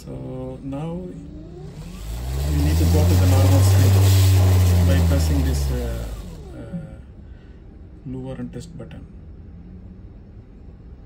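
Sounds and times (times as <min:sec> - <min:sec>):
low motor hum: 0:00.0 - 0:07.2.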